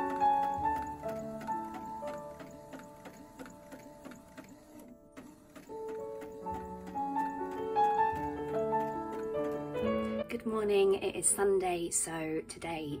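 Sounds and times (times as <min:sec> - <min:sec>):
inkjet printer printing: 0:00.0 - 0:09.8
soft background music: 0:00.0 - 0:13.0.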